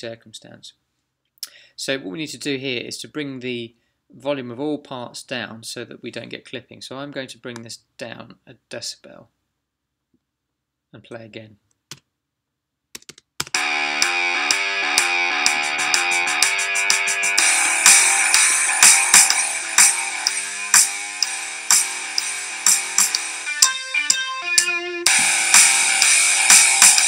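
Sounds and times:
drum kit: 13.5s - 27.0s
bass guitar: 13.6s - 27.0s
electric guitar: 13.6s - 27.0s.

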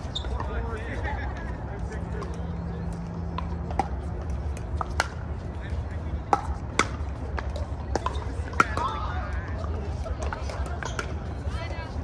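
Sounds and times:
paddles hitting plastic ball: 3.3s - 5.3s.

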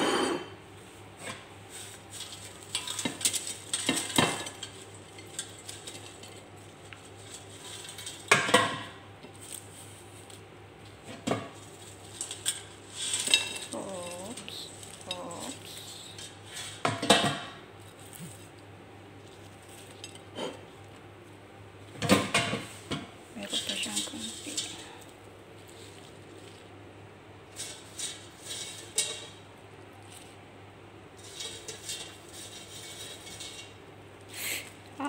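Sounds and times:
fries tumbling onto plate: 0.0s - 34.9s.

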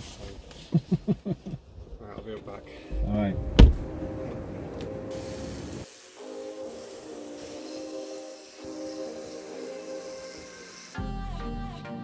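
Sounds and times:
background music: 2.3s - 12.0s
pressure washer spray hiss: 5.1s - 11.0s.

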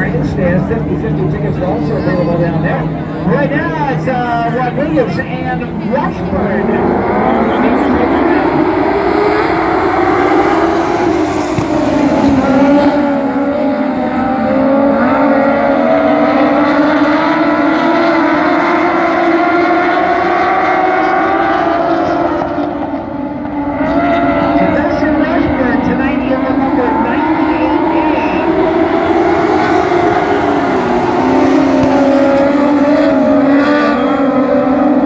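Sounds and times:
race car engines droning: 0.0s - 35.0s.

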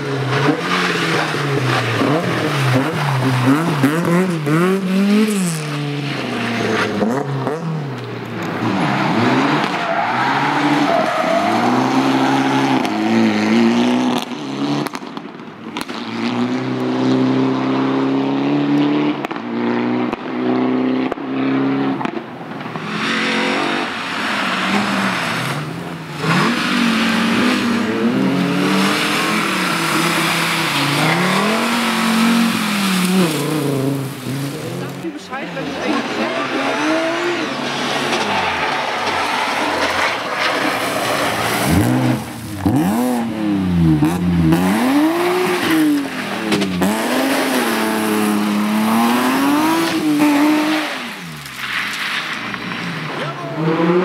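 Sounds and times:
rally car engine revving: 0.0s - 54.0s
tyres crunching on gravel: 24.3s - 43.4s.

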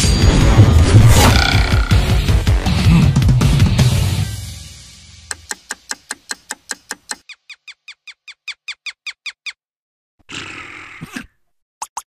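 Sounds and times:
cartoon clock ticking fast: 5.3s - 7.5s.

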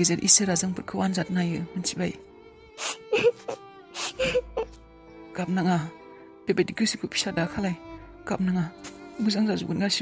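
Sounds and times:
background music: 0.0s - 10.0s
person whimpering: 2.8s - 4.7s.

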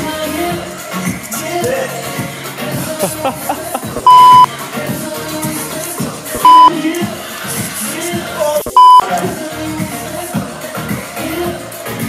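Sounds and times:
pop music playing: 0.0s - 12.0s
laughter: 2.9s - 4.0s
censor bleeps: 4.0s - 4.5s, 6.4s - 6.7s, 8.7s - 9.0s.

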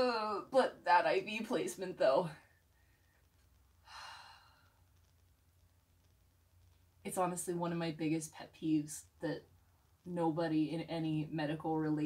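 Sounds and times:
woman sighing: 3.8s - 4.6s.

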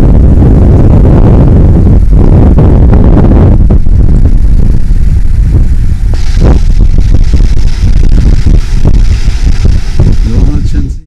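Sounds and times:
high hiss: 0.0s - 11.0s
wind buffeting microphone: 0.0s - 11.0s.

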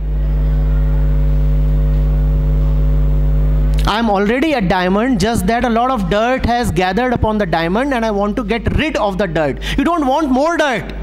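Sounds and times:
loud electrical mains hum: 0.0s - 11.0s.

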